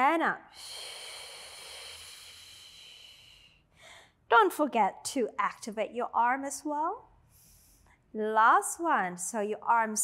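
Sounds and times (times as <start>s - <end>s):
woman exhaling forcefully: 0.6s - 4.0s.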